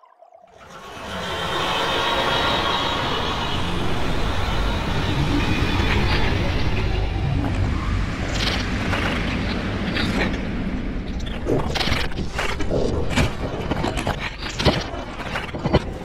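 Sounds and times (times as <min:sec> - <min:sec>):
low rumble: 0:00.5 - 0:16.0.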